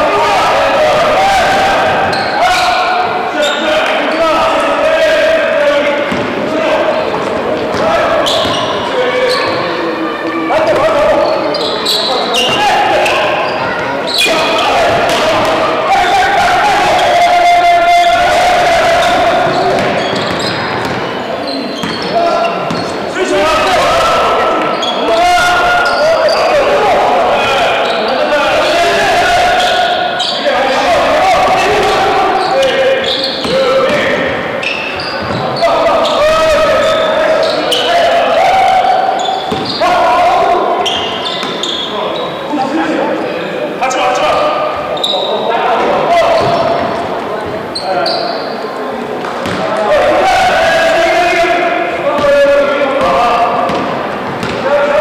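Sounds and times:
players shouting: 0.0s - 55.0s
basketball bouncing on hardwood: 53.7s - 54.6s.

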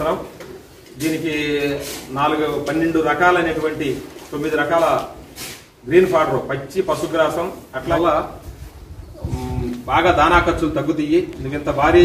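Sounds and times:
man speaking: 1.0s - 5.2s, 5.8s - 8.4s, 9.2s - 12.0s.

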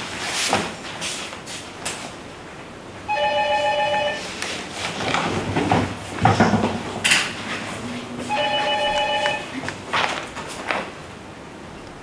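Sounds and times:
electronic telephone ringtone: 3.1s - 4.3s, 8.3s - 9.6s.

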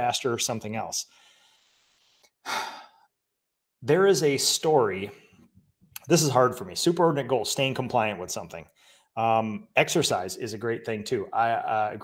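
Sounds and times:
man sighing: 2.4s - 3.1s.

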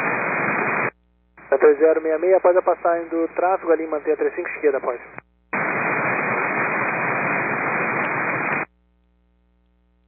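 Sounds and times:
radio static hiss: 0.0s - 8.7s
faint hum: 0.0s - 10.0s.

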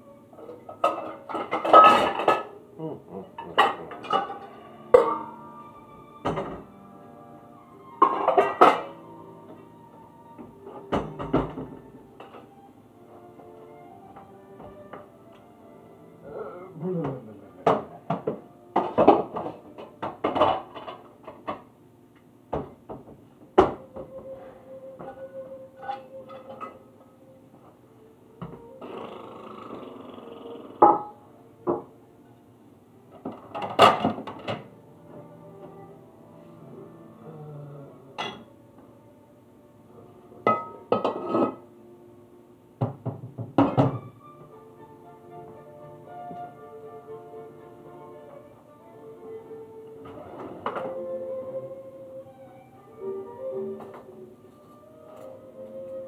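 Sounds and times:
background music: 0.0s - 56.0s
dishes clattering: 0.4s - 2.6s, 3.3s - 5.5s, 6.2s - 6.7s, 7.9s - 9.0s, 10.7s - 12.5s, 17.0s - 21.7s, 25.0s - 26.9s, 30.8s - 31.9s, 33.2s - 34.7s, 38.2s - 38.5s, 40.4s - 41.7s, 42.8s - 44.2s, 50.0s - 51.1s.

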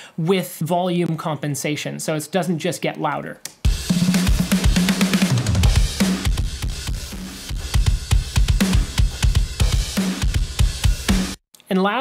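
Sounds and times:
drum kit beat: 3.6s - 11.4s.

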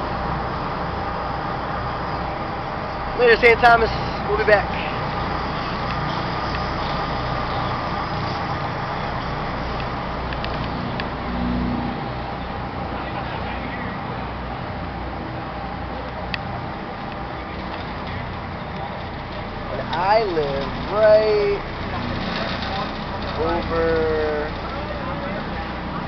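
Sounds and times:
boat engines rumbling: 0.0s - 26.0s.

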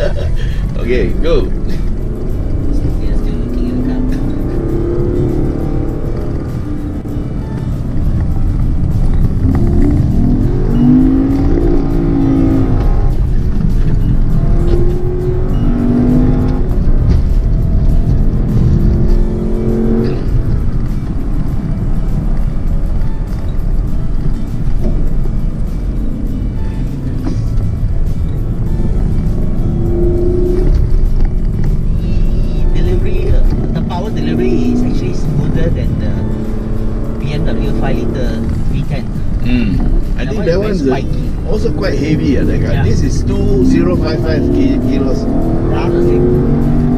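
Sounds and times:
car engine accelerating from cabin: 0.0s - 46.9s.

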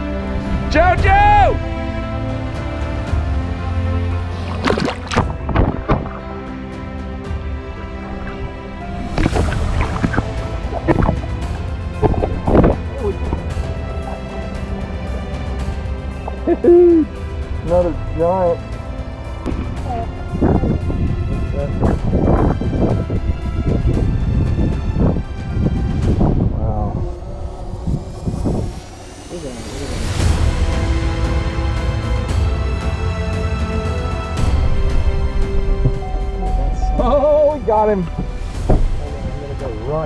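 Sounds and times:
background music: 0.0s - 40.0s
low rumble: 1.7s - 32.3s
water splashing and sloshing: 2.5s - 26.4s, 37.5s - 39.9s.

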